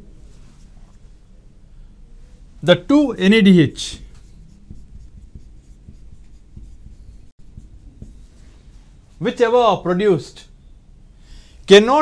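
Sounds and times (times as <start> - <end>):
marker pen writing on whiteboard: 3.8 - 8.4.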